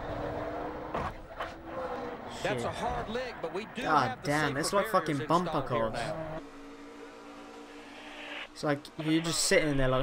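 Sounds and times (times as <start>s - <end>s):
race car engine drone: 0.0s - 10.0s.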